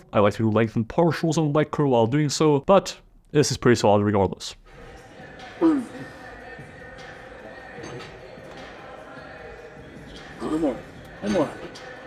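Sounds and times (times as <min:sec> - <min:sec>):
gym room ambience: 0:04.6 - 0:12.0.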